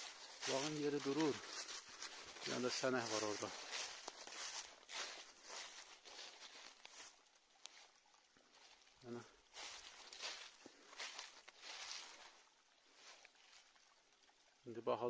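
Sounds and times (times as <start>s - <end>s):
footsteps through dry leaves: 0.0s - 13.3s.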